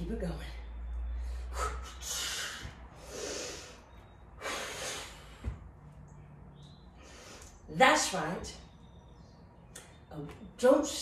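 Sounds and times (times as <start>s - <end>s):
woman exhaling forcefully: 1.5s - 3.8s.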